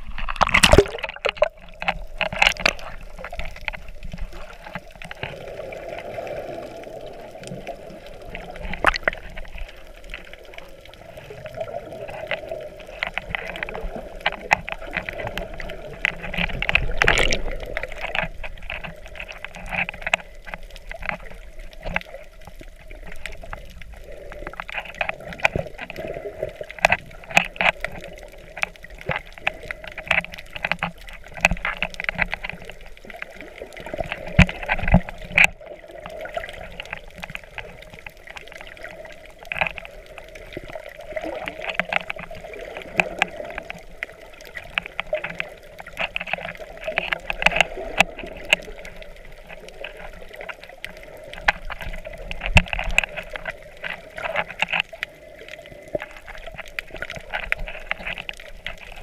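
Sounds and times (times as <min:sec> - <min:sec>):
muffled underwater water movement: 0:00.0 - 0:59.0
sharp underwater clicks and crackles: 0:00.0 - 0:59.0.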